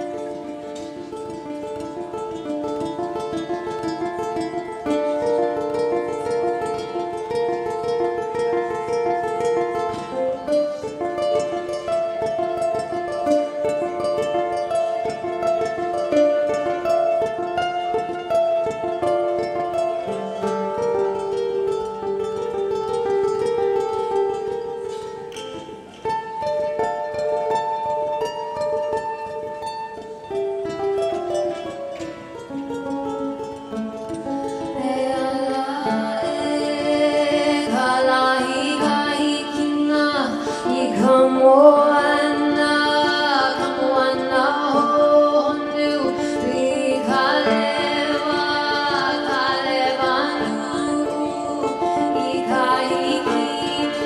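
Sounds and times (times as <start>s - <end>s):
fingerstyle ukulele: 0.0s - 54.0s
woman singing: 34.6s - 54.0s.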